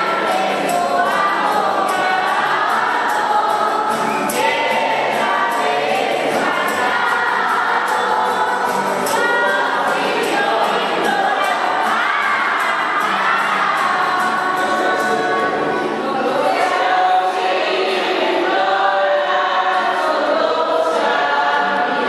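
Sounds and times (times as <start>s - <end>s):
crowd singing in unison: 0.0s - 22.0s.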